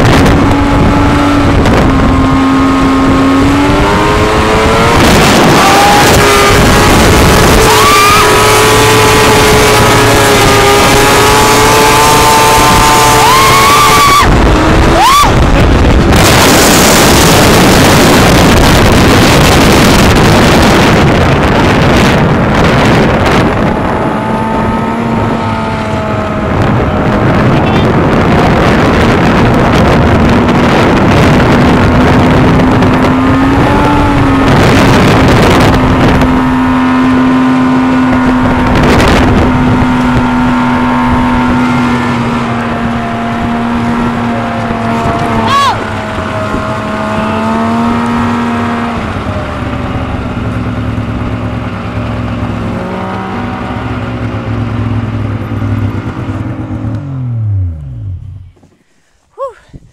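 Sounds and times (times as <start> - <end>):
snowmobile engine running: 0.0 - 58.8
wind noise on microphone: 0.0 - 59.9.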